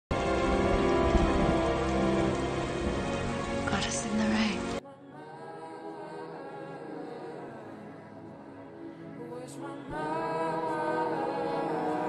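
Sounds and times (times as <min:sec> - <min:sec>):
steady rain falling: 0:00.1 - 0:04.8.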